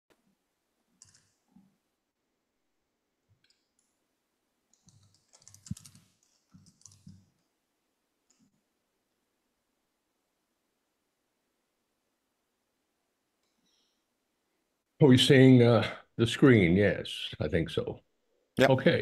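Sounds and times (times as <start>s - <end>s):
keyboard and mouse clicks: 1.0s - 1.7s, 3.3s - 4.0s, 4.7s - 7.5s.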